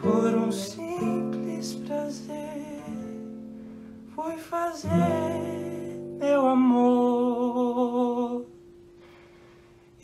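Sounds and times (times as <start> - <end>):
acoustic guitar note ringing: 0.0 - 7.4.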